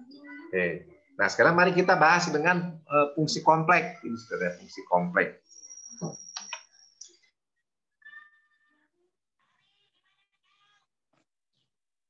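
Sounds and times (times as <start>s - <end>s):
meow-like animal call: 8.0s - 8.8s.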